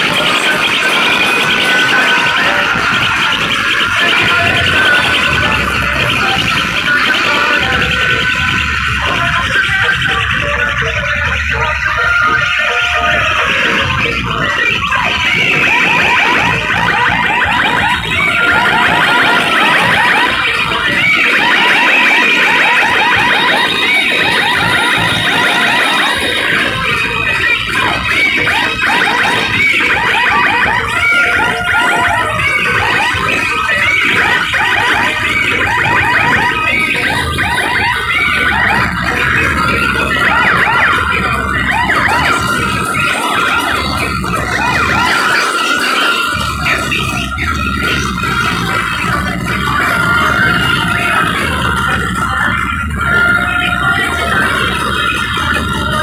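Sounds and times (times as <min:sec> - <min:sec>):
dj music with siren-like sweeps: 0:00.0 - 0:56.0.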